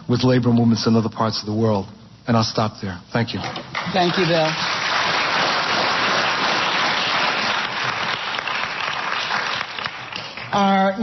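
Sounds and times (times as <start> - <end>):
audience applauding: 3.7 - 10.6.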